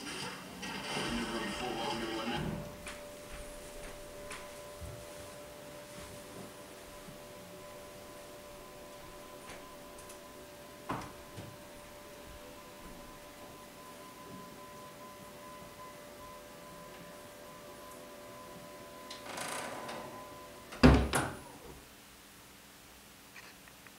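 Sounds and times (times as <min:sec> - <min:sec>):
motorised lift humming: 0:00.0 - 0:21.9.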